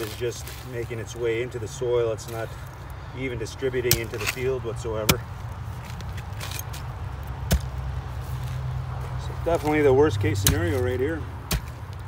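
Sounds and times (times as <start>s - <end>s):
digging tool in wet soil: 0.0s - 12.0s.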